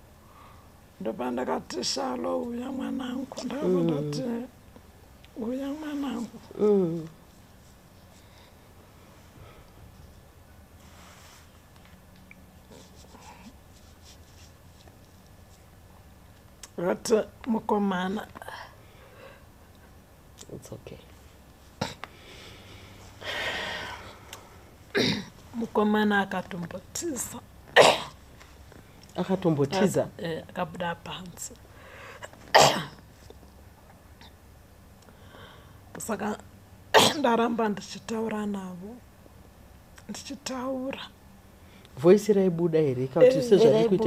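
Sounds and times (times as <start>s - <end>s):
woman coughing: 25.0s - 25.3s, 27.8s - 28.2s, 32.5s - 33.0s, 37.0s - 37.3s.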